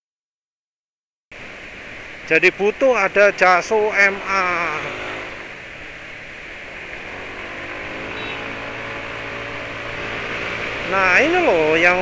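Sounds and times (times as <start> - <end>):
wind and road noise: 1.3 - 12.0
scooter engine accelerating: 3.0 - 12.0.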